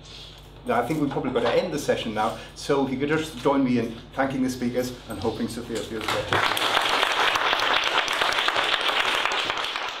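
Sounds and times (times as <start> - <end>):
audience applauding: 6.0 - 10.0.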